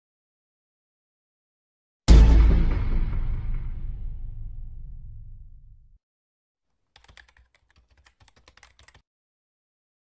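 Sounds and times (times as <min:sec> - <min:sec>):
keyboard typing: 0:06.9 - 0:09.0.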